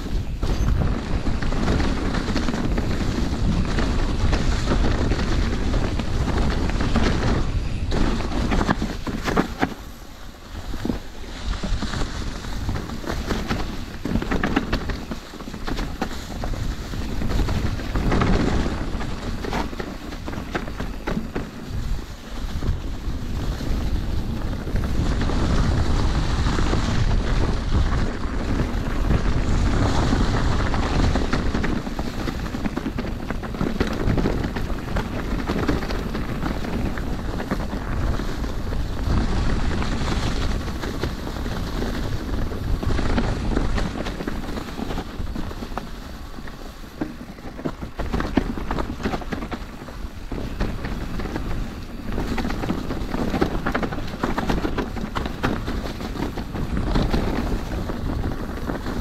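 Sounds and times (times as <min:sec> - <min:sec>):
bike rattles and knocks: 0:00.0 - 0:59.0
tyres rolling over dry leaves: 0:00.0 - 0:59.0
wind buffeting microphone: 0:00.0 - 0:59.0.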